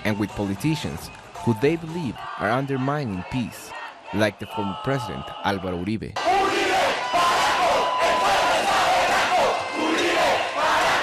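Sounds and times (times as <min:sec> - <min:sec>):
crowd shouting together: 0:01.9 - 0:05.6, 0:06.2 - 0:11.0.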